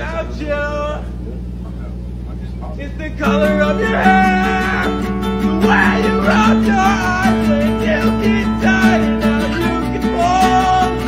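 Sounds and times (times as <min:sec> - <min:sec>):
man singing a cappella: 0:00.0 - 0:01.1, 0:02.8 - 0:11.0
low hum: 0:00.0 - 0:11.0.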